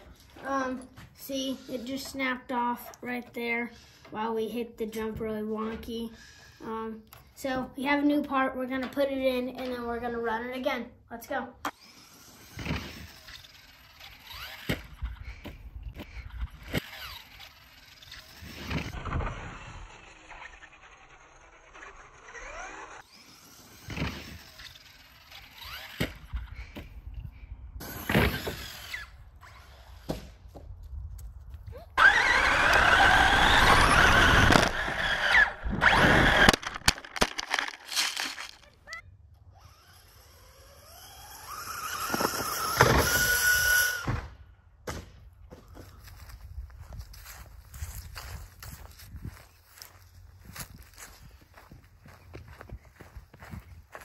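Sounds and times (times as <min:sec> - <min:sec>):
electric motor whining: 0:16.5 - 0:26.8, 0:32.0 - 0:38.6, 0:39.5 - 0:44.1.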